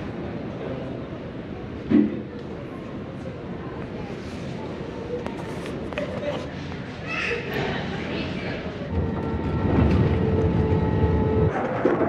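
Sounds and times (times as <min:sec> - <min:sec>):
steady hum: 0:08.7 - 0:11.6.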